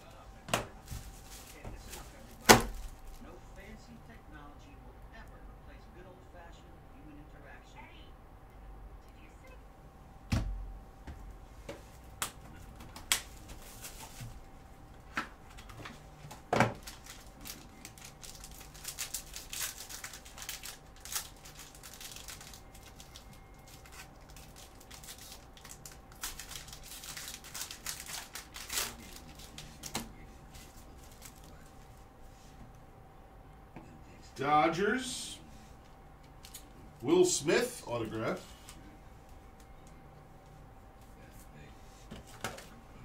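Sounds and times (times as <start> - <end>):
faint steady hum: 0.0 - 43.0
plastic shrink wrap crinkling: 0.8 - 3.3, 16.7 - 31.6.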